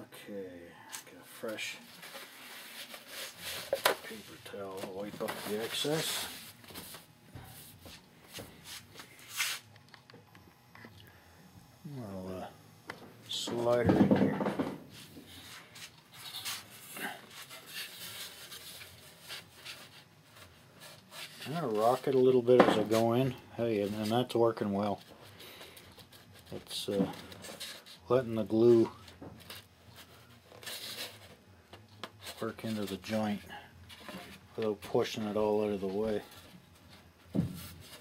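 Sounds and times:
paper towel rustling: 0:01.4 - 0:08.0.

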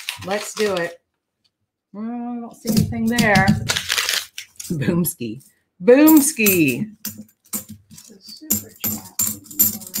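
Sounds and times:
coins clicking and clinking: 0:06.1 - 0:10.0.

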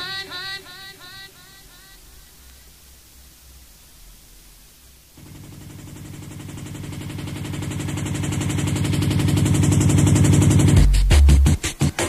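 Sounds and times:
drum roll of rapid hits: 0:05.2 - 0:12.0
drum and bass beat with heavy bass: 0:07.6 - 0:12.0.

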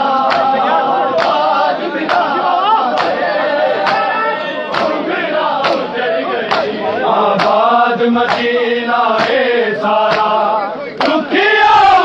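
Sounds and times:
men chanting: 0:00.0 - 0:12.0
hands slapping chests in unison: 0:00.1 - 0:11.8.

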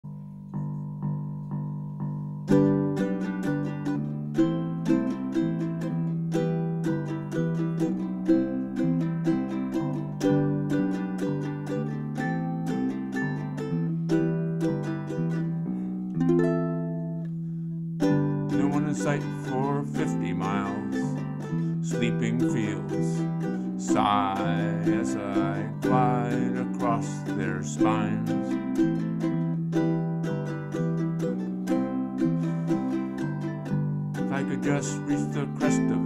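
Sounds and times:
ukulele chords: 0:00.0 - 0:36.0.

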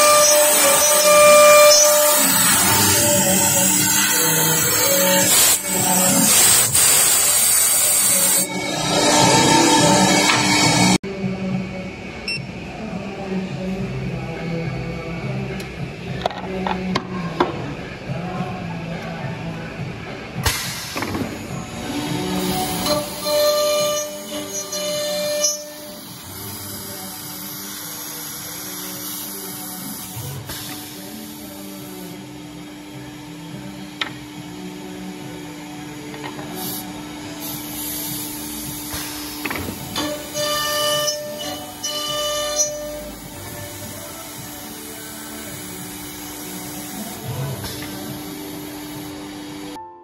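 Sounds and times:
drilling machine hum: 0:00.0 - 0:11.0
whining multi-tone machine sound: 0:00.0 - 0:16.1, 0:19.1 - 0:49.8.

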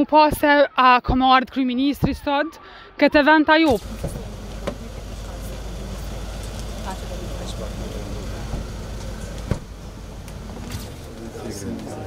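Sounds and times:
car door shutting: 0:03.7 - 0:11.2
faint voices: 0:03.7 - 0:12.0
vehicle engine idling: 0:03.8 - 0:12.0.

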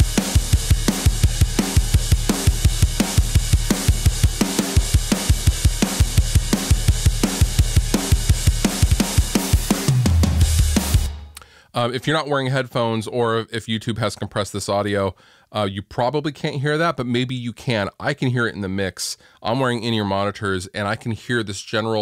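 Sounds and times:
kick drum hitting fast: 0:00.0 - 0:09.8
cymbals and snare: 0:00.0 - 0:11.5.

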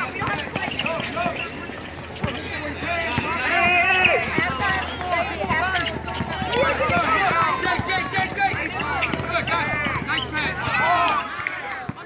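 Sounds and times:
footsteps on asphalt: 0:00.0 - 0:12.0
people talking: 0:00.0 - 0:12.0
sneaker squeaks: 0:00.0 - 0:12.0.

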